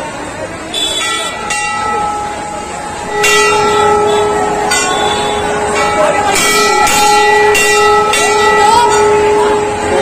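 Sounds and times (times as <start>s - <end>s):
brass bell struck and ringing: 1.0s - 10.0s.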